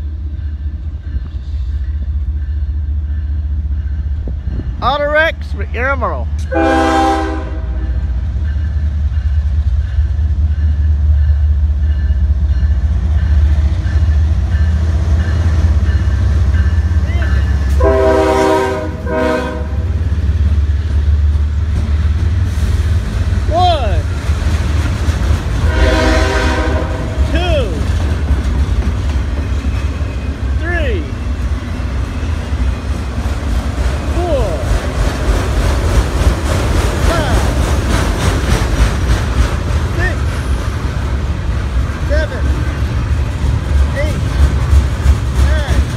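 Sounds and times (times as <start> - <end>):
freight train rumbling past: 0.0 - 45.9
train air horn blasts: 6.5 - 8.0, 17.7 - 19.9, 25.6 - 27.3.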